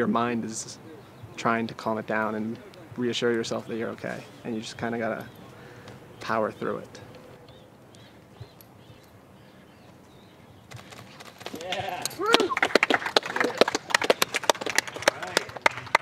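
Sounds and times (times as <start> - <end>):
people clapping: 11.4 - 16.0
people shouting and cheering: 11.6 - 12.7.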